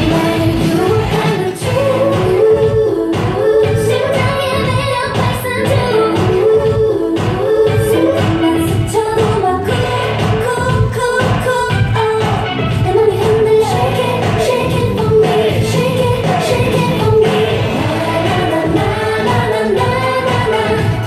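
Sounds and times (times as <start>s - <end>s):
pop dance song with female singing: 0.0s - 21.0s.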